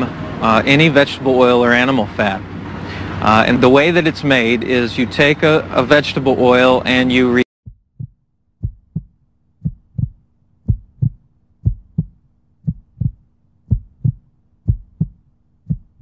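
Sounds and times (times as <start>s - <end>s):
faint steady hum: 0.0s - 16.0s
heartbeat thumps: 7.6s - 16.0s.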